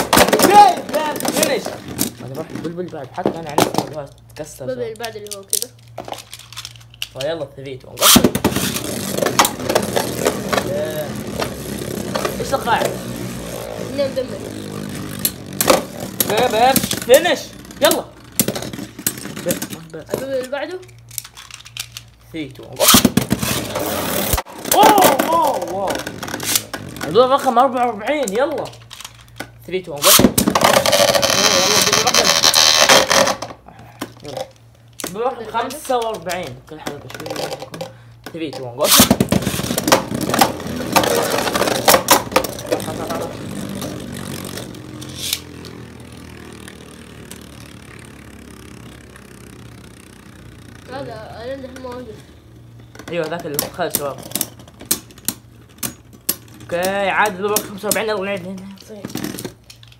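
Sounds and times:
spinning top rasping whirr: 30.1s - 33.4s, 38.9s - 52.2s.

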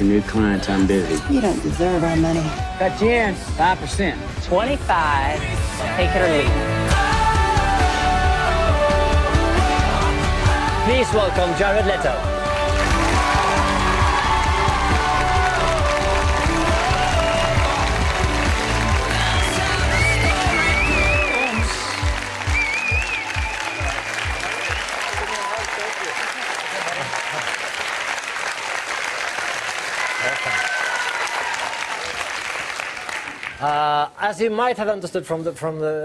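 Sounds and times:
bass-heavy walk-on music: 0.0s - 24.5s
audience applauding: 12.4s - 33.9s.

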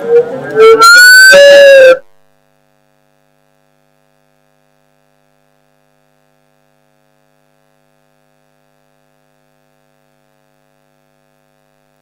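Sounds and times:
microphone feedback howl: 0.0s - 2.1s.

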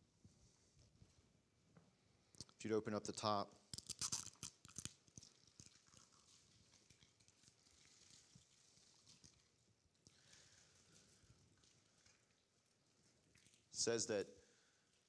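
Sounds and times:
thin plastic crinkling: 3.7s - 13.8s.

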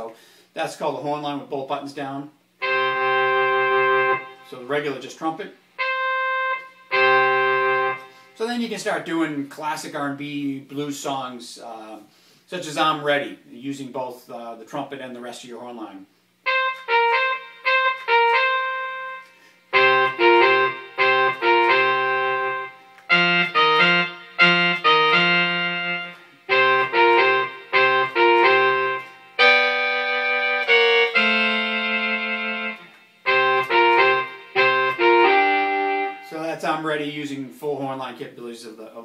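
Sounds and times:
synthesised horn section riff: 2.6s - 8.6s, 16.4s - 37.3s.

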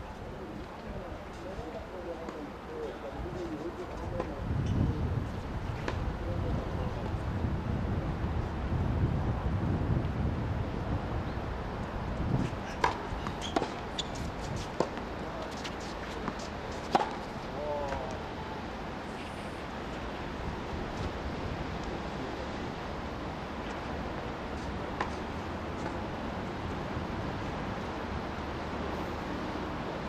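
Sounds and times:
tennis ball hit by racket: 12.8s - 17.3s.

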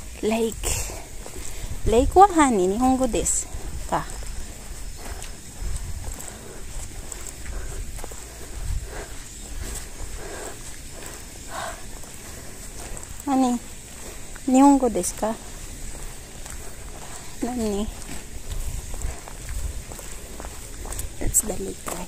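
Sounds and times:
footsteps: 0.0s - 22.0s
wind on microphone: 0.0s - 22.0s.

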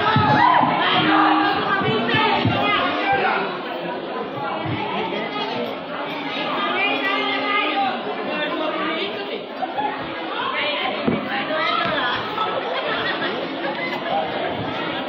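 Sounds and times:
many voices chattering: 0.0s - 15.0s.

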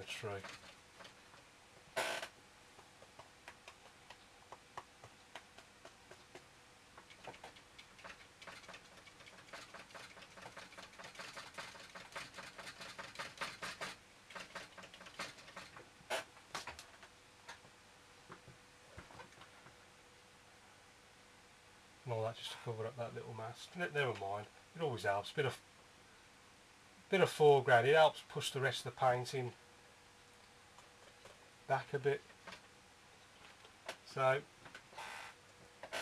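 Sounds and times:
brush tapping on paper: 2.7s - 10.8s.

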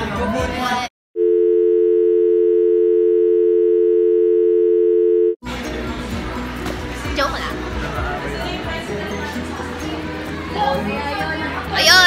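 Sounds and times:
telephone dial tone: 1.2s - 5.4s
music: 5.4s - 12.0s.

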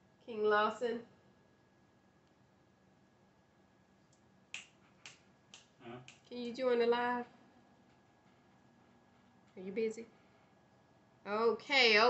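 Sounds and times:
finger snap: 4.1s - 6.3s.

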